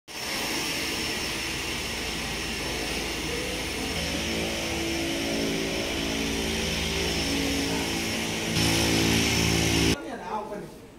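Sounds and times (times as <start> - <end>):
propeller aircraft engine droning: 0.2 - 10.0.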